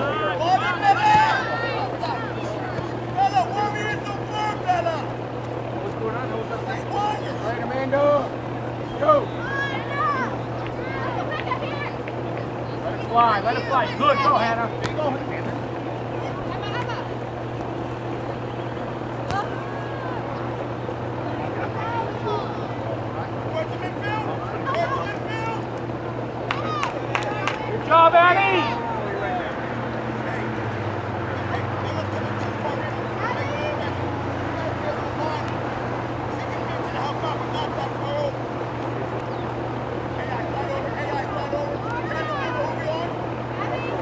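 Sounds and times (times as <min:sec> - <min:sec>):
players and spectators shouting: 0:00.0 - 0:44.0
steady low hum: 0:00.0 - 0:44.0.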